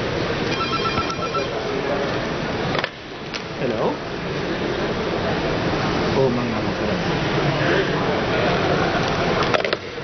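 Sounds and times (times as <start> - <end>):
murmur of busy hall: 0.0 - 10.0
rapidly pulsing electronic beep: 0.5 - 1.9.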